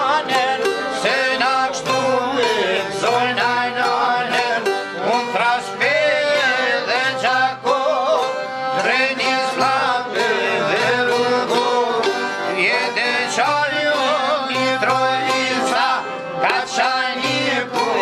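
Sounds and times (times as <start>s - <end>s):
men singing together: 0.0s - 18.0s
plucked long-necked lute: 0.0s - 18.0s
violin: 0.0s - 18.0s.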